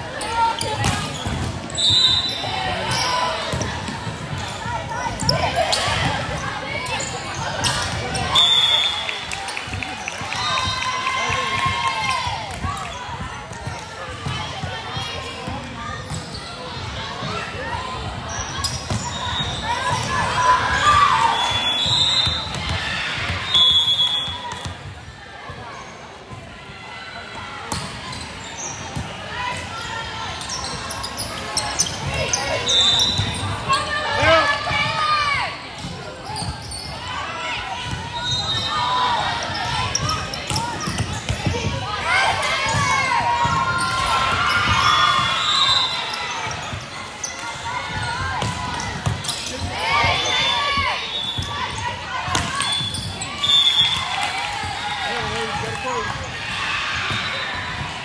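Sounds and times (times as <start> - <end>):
voices calling and cheering: 0.0 - 58.0
referee whistle blasts: 1.7 - 2.5, 8.3 - 9.2, 21.2 - 22.6, 23.4 - 24.6, 44.8 - 46.2, 52.6 - 54.2.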